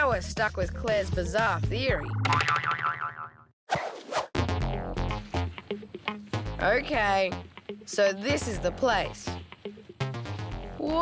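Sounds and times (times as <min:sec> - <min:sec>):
cartoon boing sound effect: 0:02.2 - 0:03.5
low music bed: 0:04.5 - 0:11.0.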